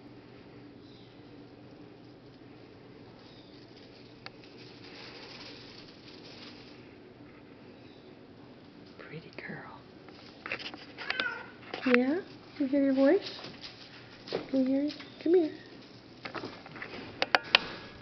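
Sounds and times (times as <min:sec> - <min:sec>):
faint whispering: 0:08.9 - 0:09.9.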